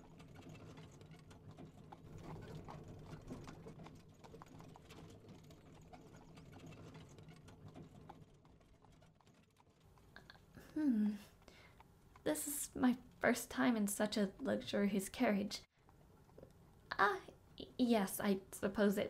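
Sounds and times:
horse hooves clip-clopping: 0.0s - 13.2s.

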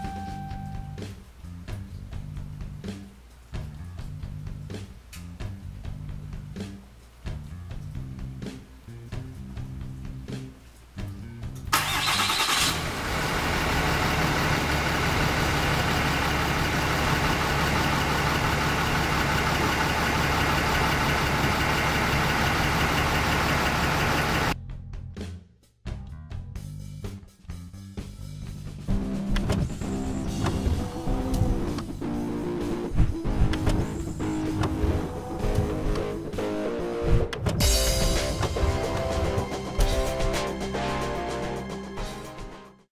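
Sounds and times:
diesel engine starting and running: 11.6s - 24.6s, 29.0s - 40.0s
rock guitar music: 29.0s - 42.7s.

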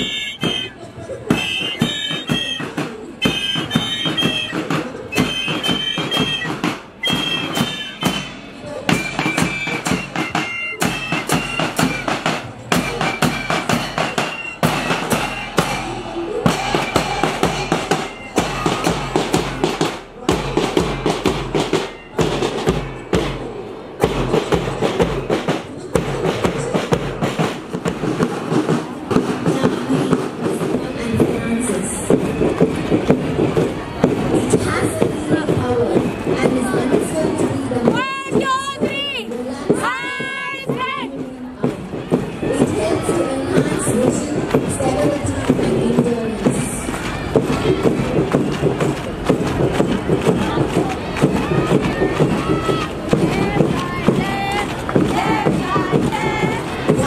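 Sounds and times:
shrill fife melody: 0.0s - 23.2s
side drums beating: 0.0s - 57.0s.

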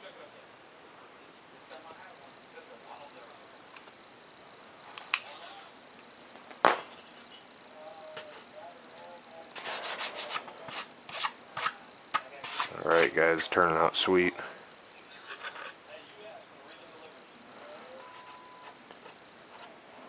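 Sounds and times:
man speaking: 12.7s - 14.6s.

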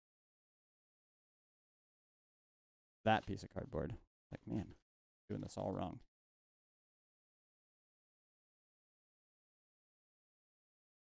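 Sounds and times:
person speaking: 3.1s - 6.0s.

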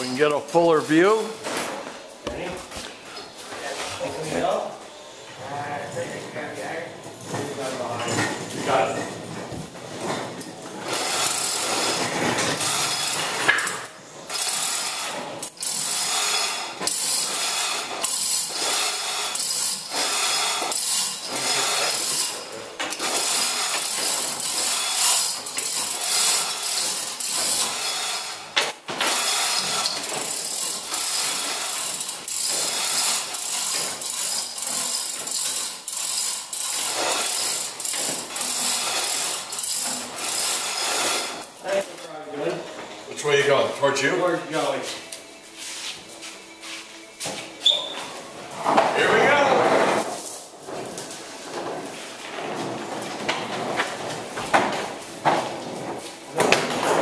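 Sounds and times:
ratchet pawl clicking: 14.3s - 28.2s, 29.1s - 41.0s.

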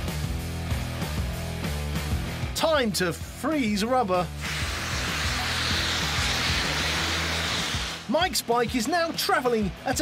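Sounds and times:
background music with bass line: 0.0s - 10.0s
fire extinguisher rushing hiss: 4.4s - 8.1s.

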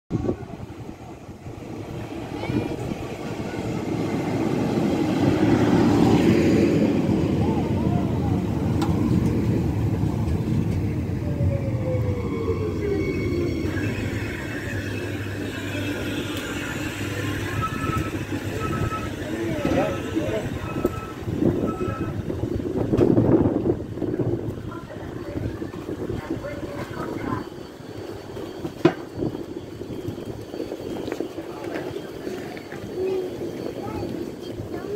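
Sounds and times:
train arriving and braking: 0.1s - 34.9s
train door beeps: 8.6s - 34.9s.

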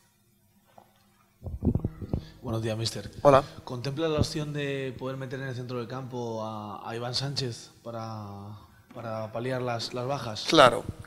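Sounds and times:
loud low thumps and rumbling: 4.1s - 4.6s.

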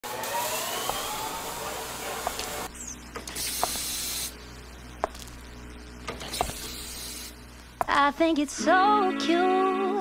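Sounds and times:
hiss-like noise with rising tones: 0.1s - 4.4s.

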